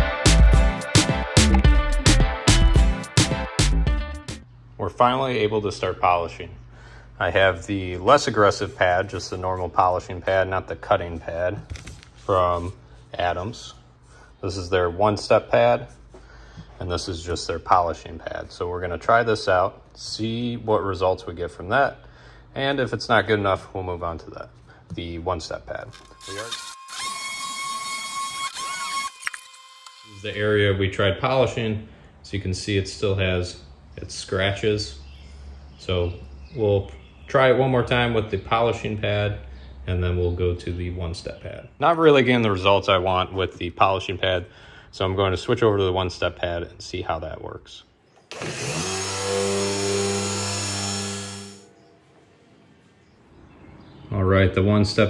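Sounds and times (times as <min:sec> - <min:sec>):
polisher motor hum with hiss: 0:48.3 - 0:51.6.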